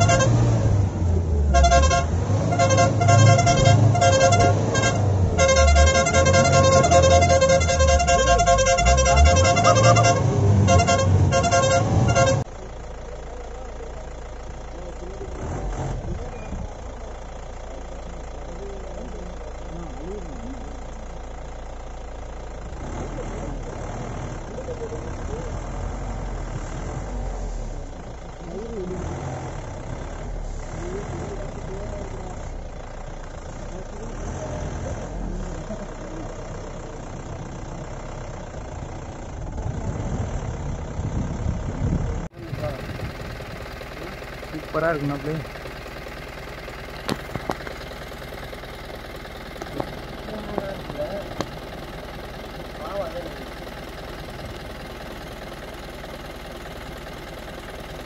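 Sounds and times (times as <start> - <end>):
vehicle engine idling: 0.0 - 58.0.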